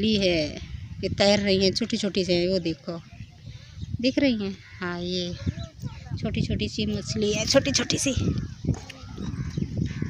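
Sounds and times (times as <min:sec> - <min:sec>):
faint background talk: 0:00.0 - 0:09.8.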